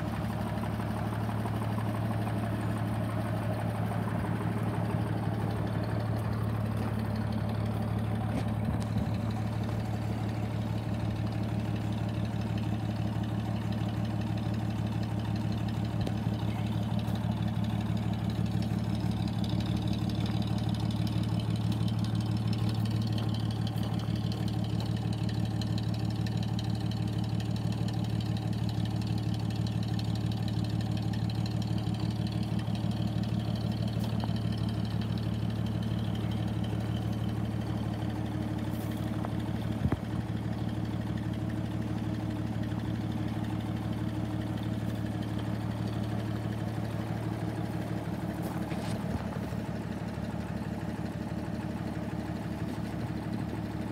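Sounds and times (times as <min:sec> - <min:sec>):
car engine idling: 0:00.0 - 0:53.9.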